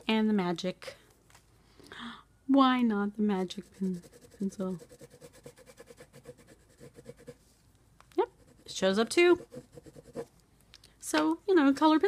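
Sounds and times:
pencil scribbling on paper: 0:03.4 - 0:07.4, 0:08.3 - 0:10.3.

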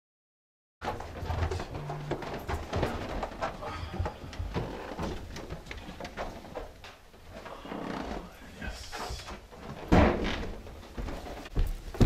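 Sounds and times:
light footsteps: 0:00.8 - 0:12.0
door shutting with thud: 0:09.8 - 0:10.6.

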